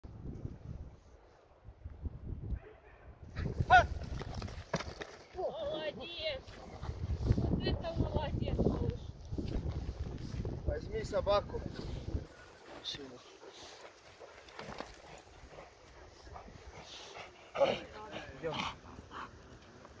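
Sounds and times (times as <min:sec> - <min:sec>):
dog barking: 0:02.6 - 0:03.2.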